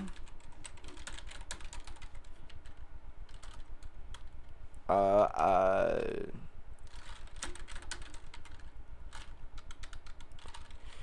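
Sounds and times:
computer keyboard typing: 0.0 - 4.4, 6.8 - 10.9.

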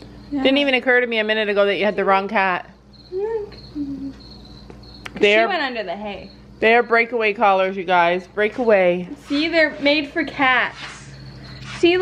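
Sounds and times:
cricket trill: 0.0 - 12.0.

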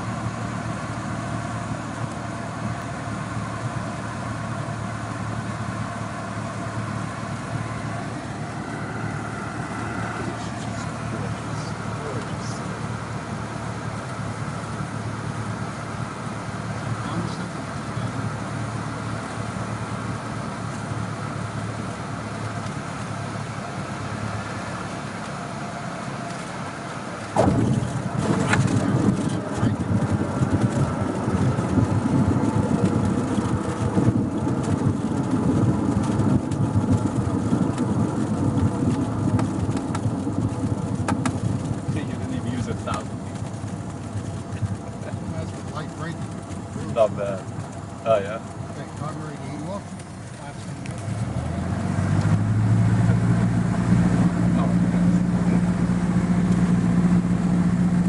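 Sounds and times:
propeller plane engine running: 0.0 - 58.0
tyres rumbling on runway: 0.0 - 58.0.

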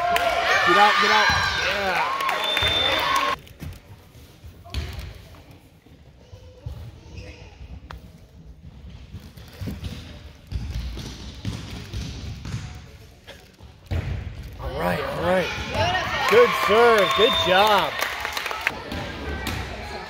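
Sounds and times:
ball bouncing on hardwood floor: 8.6 - 12.8.

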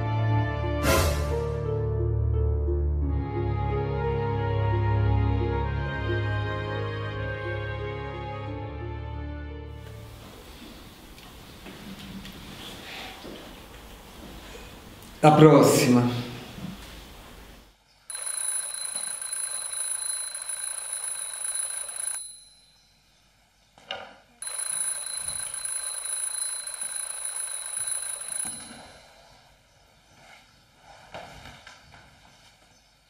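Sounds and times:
high-pitched electronic ringtone: 18.1 - 22.8, 24.4 - 29.1.

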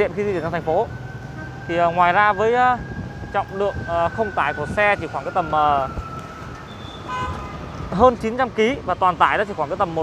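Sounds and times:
high-pitched horn toot: 6.7 - 7.6.

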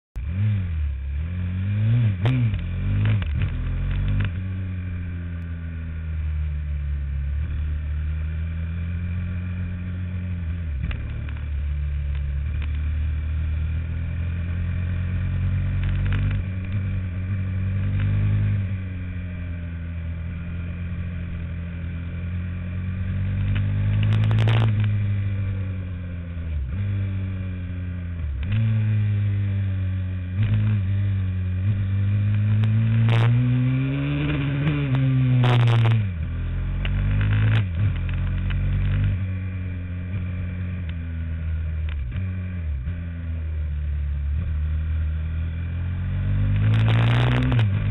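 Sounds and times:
motorcycle engine revving: 0.2 - 47.9.

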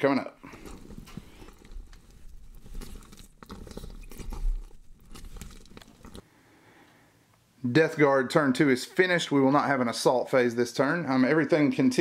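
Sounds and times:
crackling and crunching: 0.4 - 6.2.

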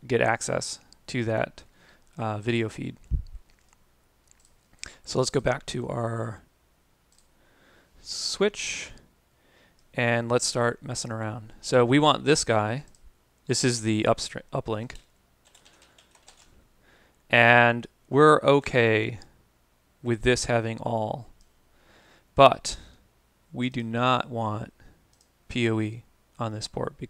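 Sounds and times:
computer mouse clicks: 3.0 - 4.9
typing on a keyboard: 14.9 - 16.5.

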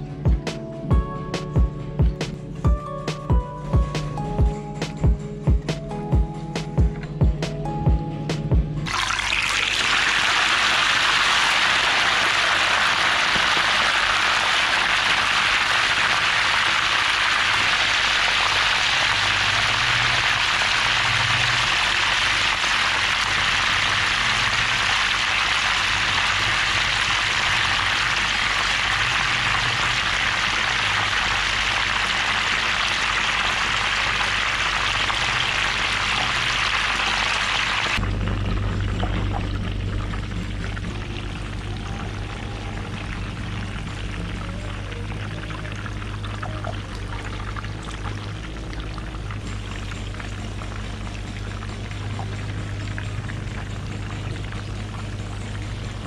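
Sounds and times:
oil sizzling and bubbling: 8.8 - 56.0.

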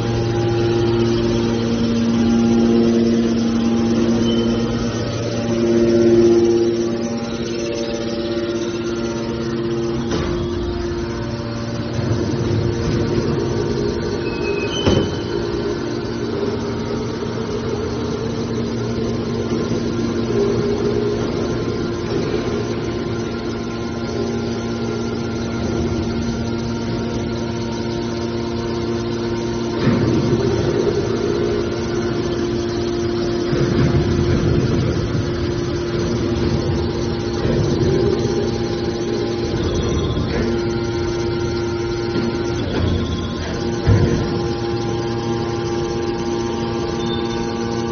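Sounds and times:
hydraulic baler humming: 0.0 - 47.9.

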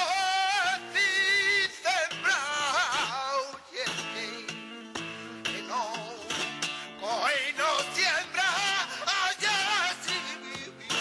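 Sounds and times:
flamenco guitar strumming: 0.0 - 11.0
man singing ornamented phrases: 0.0 - 11.0.

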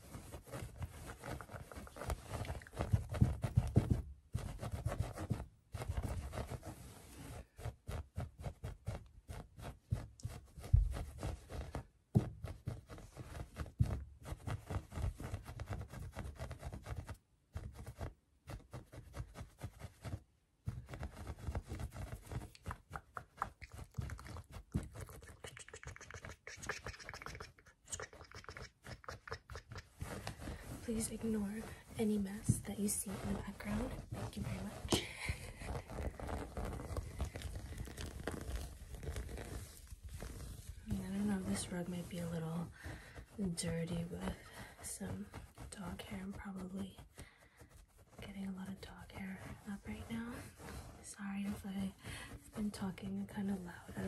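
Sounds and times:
fingers tapping and scratching rug: 0.0 - 43.6.

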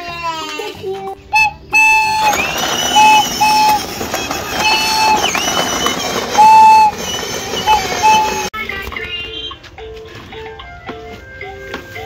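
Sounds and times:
toy whistle toots: 1.3 - 8.5
toy train rattling over paving: 1.4 - 9.5.

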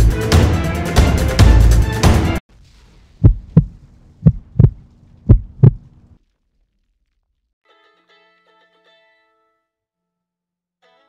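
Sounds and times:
heartbeat double thumps: 3.2 - 5.9.

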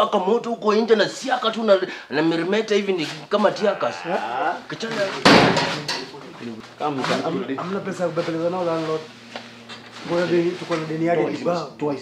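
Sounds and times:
man talking: 0.0 - 9.1, 10.0 - 12.0
wooden door crashing: 5.2 - 5.8.

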